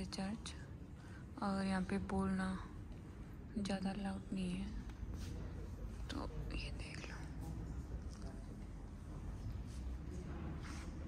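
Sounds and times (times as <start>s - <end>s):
person whispering: 4.9s - 11.0s.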